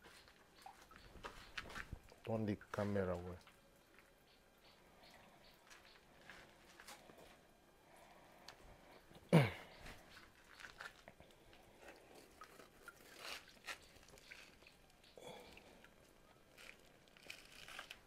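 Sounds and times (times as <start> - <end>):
light water splashes: 0.0 - 7.2, 10.0 - 18.0
person speaking: 2.2 - 3.4
net handling clicks and rustles: 16.5 - 18.0.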